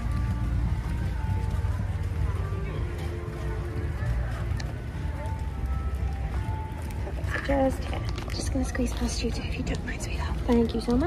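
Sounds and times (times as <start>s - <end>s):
distant music: 0.0s - 11.0s
low outdoor rumble: 0.0s - 11.0s.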